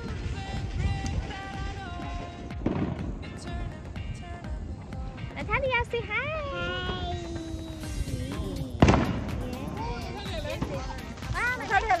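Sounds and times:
firework bang: 2.5 - 3.4, 8.8 - 9.8.

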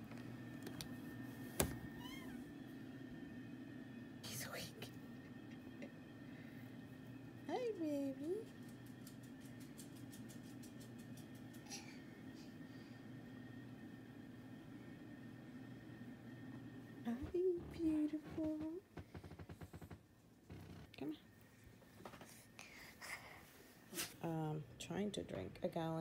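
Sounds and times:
low room hum: 0.0 - 26.0.

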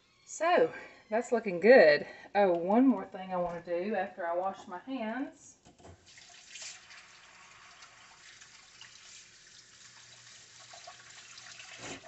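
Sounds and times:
tap water running over hands: 5.9 - 12.0.

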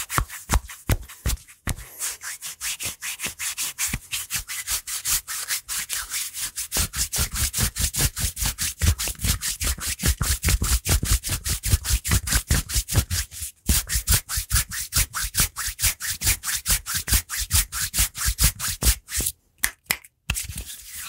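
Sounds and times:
hands rubbing bare forearms: 0.0 - 19.4, 20.3 - 21.0.

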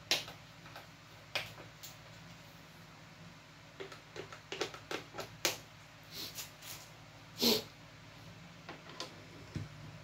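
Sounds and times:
amplifier mains hum: 0.0 - 10.0.

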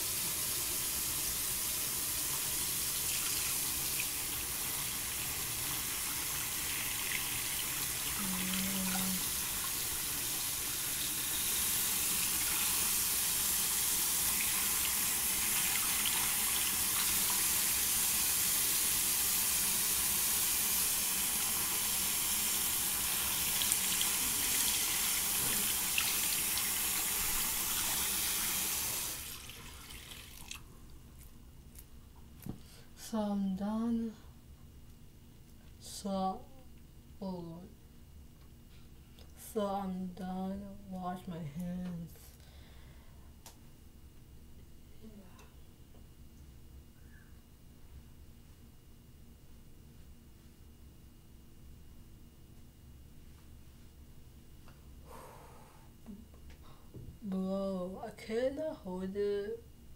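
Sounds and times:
sink tap running: 0.0 - 30.6.

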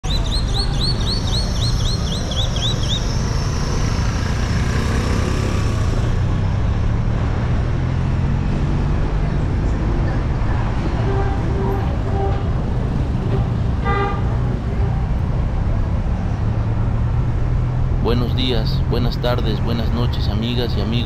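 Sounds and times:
bird chirping rapidly: 0.0 - 4.0
vehicle rumble: 0.0 - 21.0.

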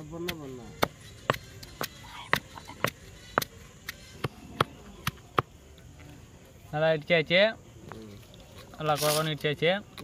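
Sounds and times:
pestle pounding in stone mortar: 0.2 - 5.5.

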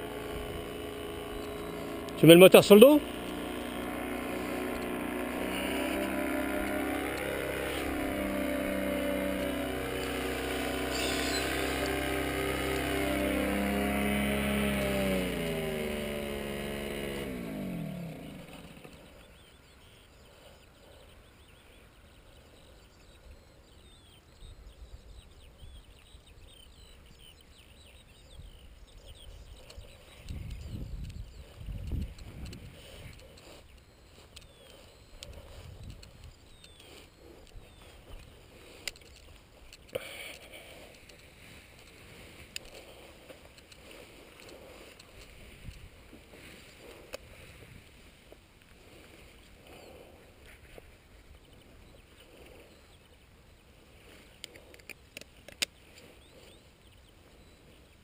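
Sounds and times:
paramotor engine running: 0.0 - 21.7, 28.5 - 53.2.

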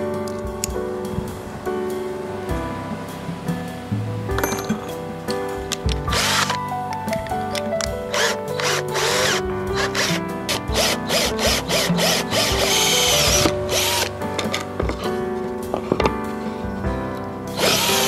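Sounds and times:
background music: 0.0 - 18.0
cordless drill drilling: 6.1 - 6.5, 8.1 - 14.1, 17.6 - 18.0.

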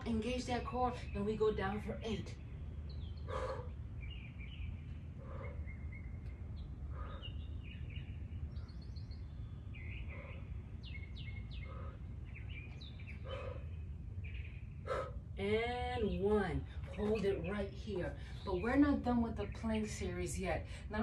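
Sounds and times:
birds chirping: 0.0 - 21.0
low outdoor rumble: 0.0 - 21.0
short exhaled breaths: 3.3 - 3.8, 5.2 - 5.7, 11.6 - 12.1, 14.8 - 15.2.

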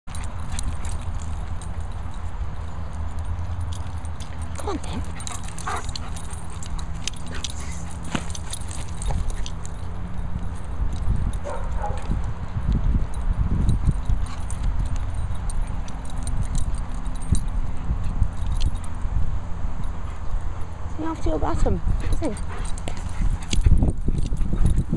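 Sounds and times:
dogs scuffling and clicking: 0.1 - 24.9.

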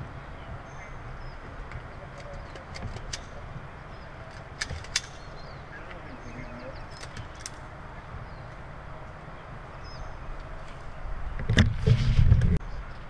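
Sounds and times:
low outdoor rumble: 0.0 - 13.0
faint bird chirps: 5.2 - 7.0.

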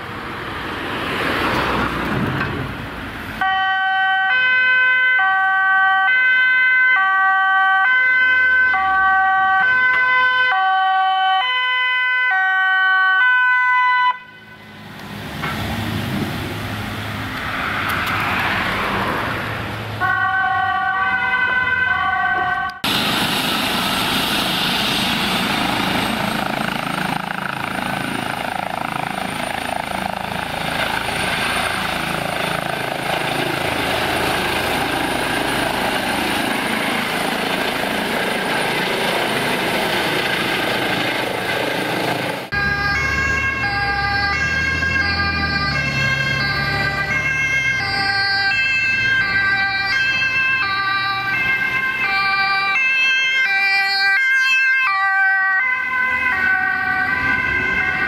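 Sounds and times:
vehicle noise: 0.0 - 58.0
two-tone ambulance siren: 3.4 - 14.9, 20.0 - 23.0, 25.1 - 40.6, 42.4 - 58.0
helicopter turbine and rotor whine: 22.8 - 54.0.

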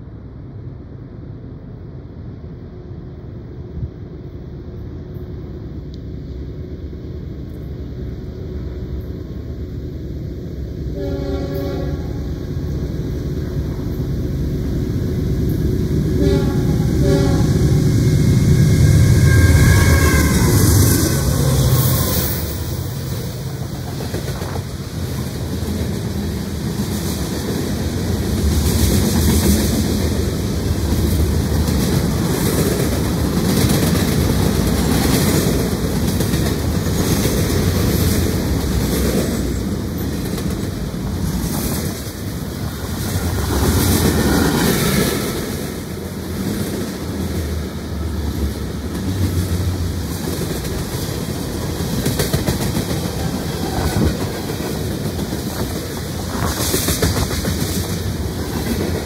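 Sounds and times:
freight train rolling past: 0.0 - 59.0
faint high squeal: 18.2 - 22.9.

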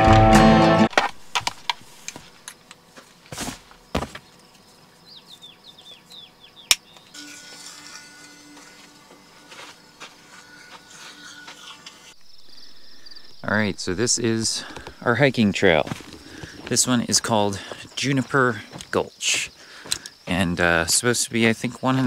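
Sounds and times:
acoustic guitar music: 0.0 - 1.1
electric toothbrush humming: 7.2 - 12.2.

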